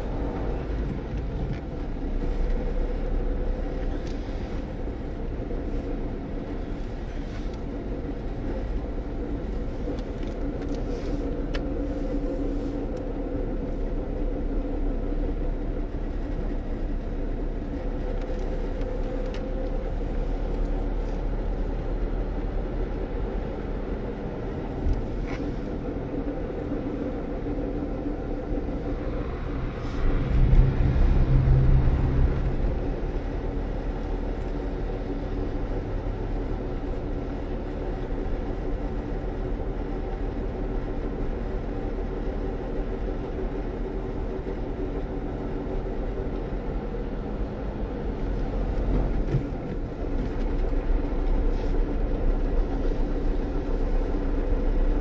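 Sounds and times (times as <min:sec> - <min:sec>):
car engine and tyre rumble: 0:00.0 - 0:55.0
road noise rushing: 0:00.0 - 0:55.0.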